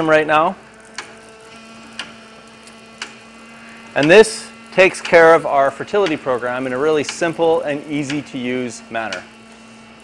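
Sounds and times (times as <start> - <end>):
irrigation system hum: 0.0 - 10.0.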